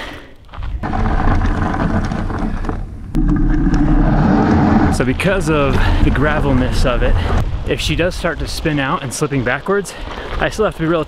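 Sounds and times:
tyres rumbling on gravel: 0:00.5 - 0:11.0.

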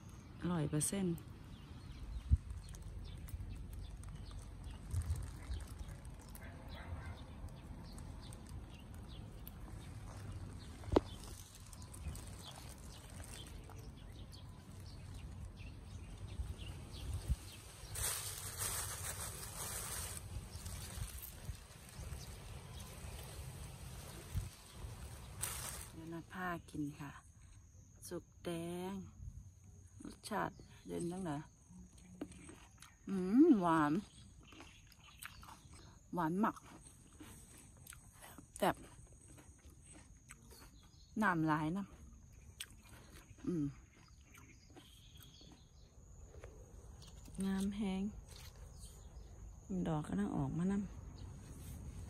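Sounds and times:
rustling of plant leaves: 0:00.5 - 0:27.0, 0:44.8 - 0:52.0
wet chewing mouth sounds: 0:32.0 - 0:33.1, 0:34.0 - 0:41.1, 0:42.5 - 0:45.7.

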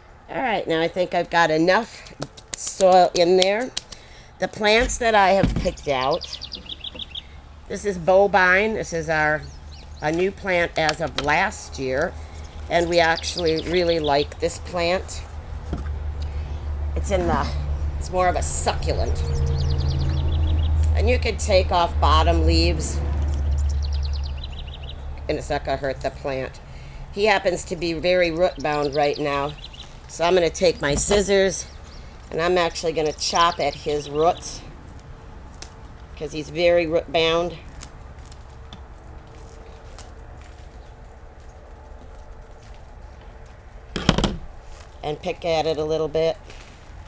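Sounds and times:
bird trilling: 0:05.7 - 0:07.4.

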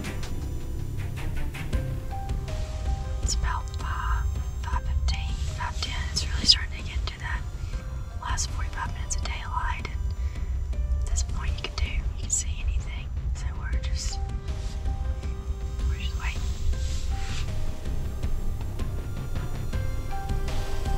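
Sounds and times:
background music: 0:00.0 - 0:20.9
low rumble: 0:00.0 - 0:20.9
person whispering: 0:03.3 - 0:07.5, 0:08.2 - 0:10.0, 0:11.0 - 0:14.2, 0:15.8 - 0:16.6.

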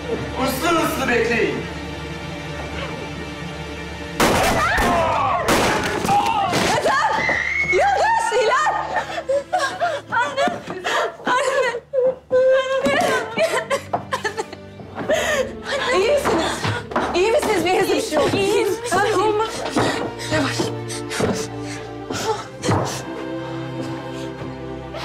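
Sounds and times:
dramatic background music: 0:00.0 - 0:25.0
young woman crying and sobbing: 0:06.5 - 0:25.0.

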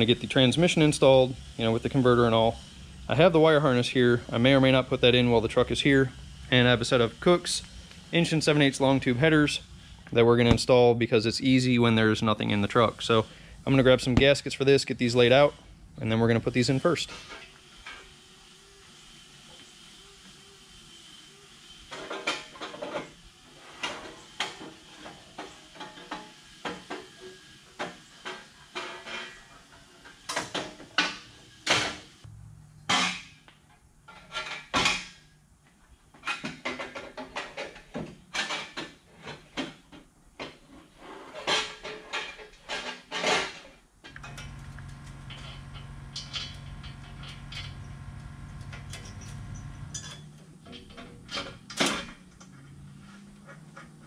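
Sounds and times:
steady low hum: 0:00.0 - 0:21.9, 0:32.2 - 0:33.9, 0:44.0 - 0:53.9
metal clanks and rattles: 0:34.0 - 0:35.2, 0:41.4 - 0:48.0, 0:48.6 - 0:52.6.

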